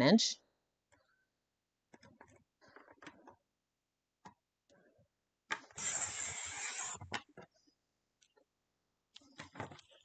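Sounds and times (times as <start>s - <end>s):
paper trimmer scraping paper: 5.7s - 7.2s.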